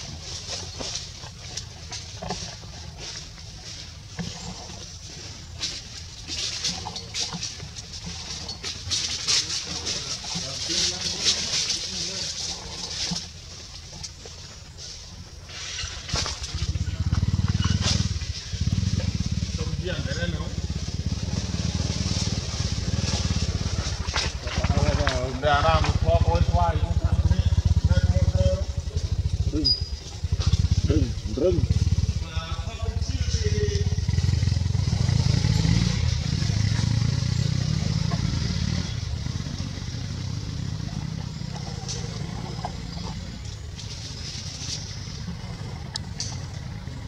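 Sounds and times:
low engine rumble: 0.0 - 47.0.

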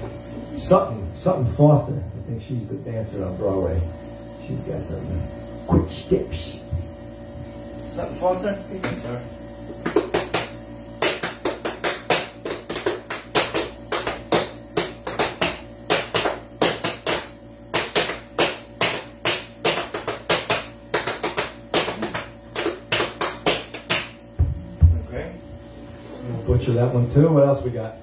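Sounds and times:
tap-dance steps: 9.8 - 25.1.

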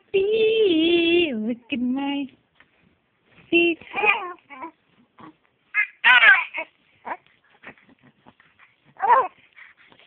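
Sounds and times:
baby fussing: 8.9 - 9.4
baby crying: 9.0 - 9.4.

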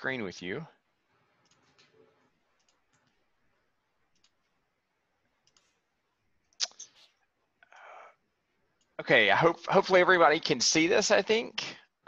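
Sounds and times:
computer mouse clicks: 1.4 - 3.2, 4.1 - 4.5, 5.4 - 5.8.

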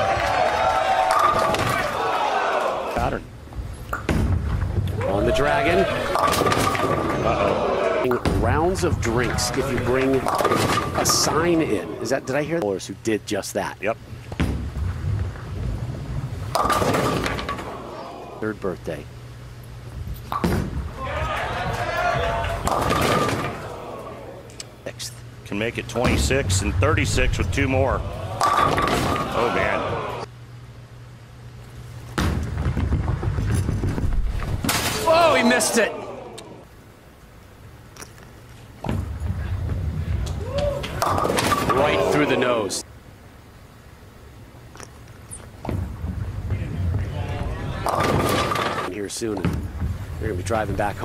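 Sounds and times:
low bowling alley rumble: 0.0 - 51.0
bowling pins crashing: 5.8 - 7.4, 8.2 - 11.6, 16.4 - 17.9, 21.8 - 23.8, 28.2 - 30.0, 32.2 - 35.5, 40.8 - 42.3, 45.6 - 50.2
bowling ball rolling rumble: 14.4 - 18.0, 32.1 - 34.7, 38.8 - 42.3, 45.5 - 51.0.

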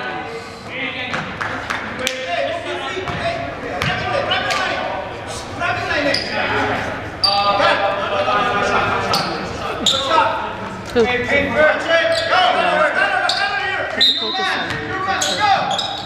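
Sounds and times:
indistinct chatter in gym: 0.0 - 16.0.

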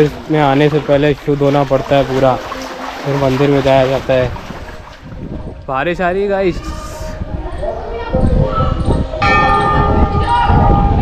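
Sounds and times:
temple bell ringing: 9.2 - 11.0.

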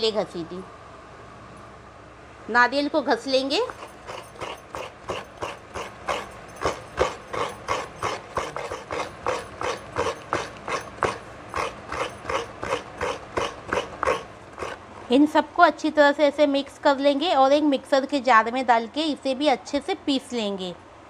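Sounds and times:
coconut grating scrapes: 3.6 - 15.1.

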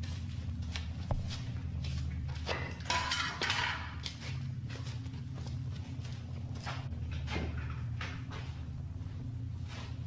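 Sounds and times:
footsteps on concrete: 0.0 - 2.9, 3.8 - 10.0
steady low hum: 0.0 - 10.0.

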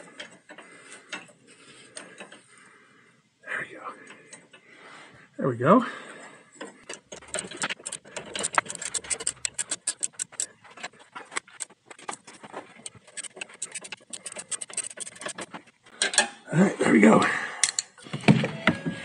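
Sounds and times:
ratchet wrench clicking: 6.9 - 10.5, 11.4 - 16.2.

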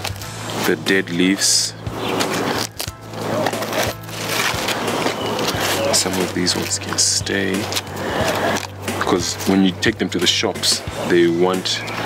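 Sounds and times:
leaves tearing and crackling: 0.0 - 0.8, 2.0 - 9.6
lettuce leaves rustling and snapping: 0.0 - 0.8, 2.1 - 10.0.

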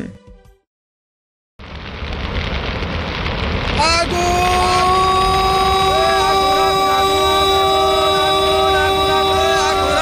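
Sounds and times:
fire crackling hiss: 1.6 - 10.0
rising sustained tone: 4.6 - 10.0.

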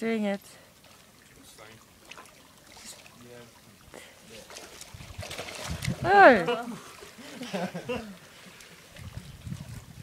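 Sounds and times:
water splashing: 0.0 - 10.0.

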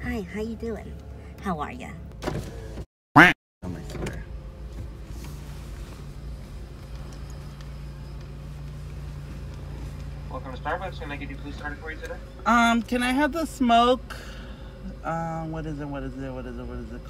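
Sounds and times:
car engine idling: 0.0 - 2.8, 3.7 - 17.0.

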